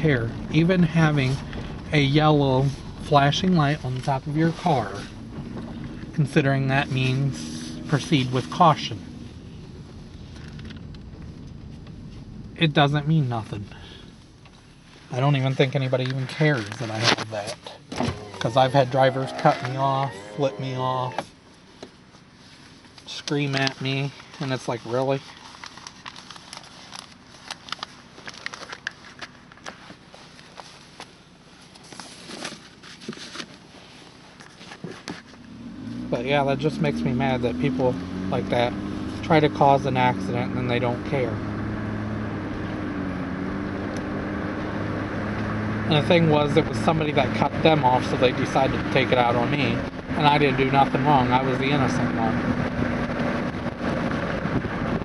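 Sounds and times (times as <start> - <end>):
road noise inside moving car: 0.0 - 55.0.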